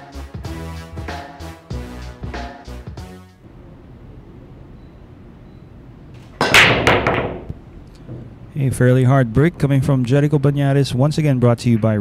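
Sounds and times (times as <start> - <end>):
pool balls clattering: 6.3 - 8.4
cue ball cracking into pool balls: 6.4 - 7.6.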